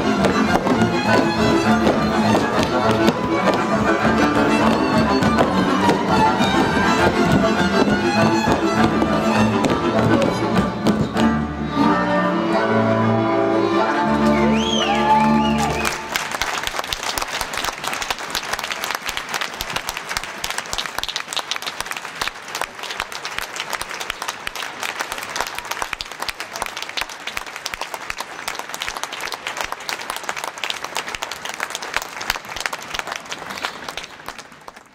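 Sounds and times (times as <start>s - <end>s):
large audience applauding: 0.0s - 10.4s, 14.2s - 34.9s.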